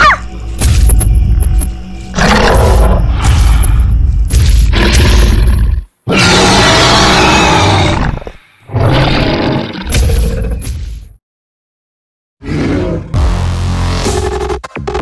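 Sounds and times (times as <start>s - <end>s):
deep rough dinosaur roars: 12.4s - 13.2s.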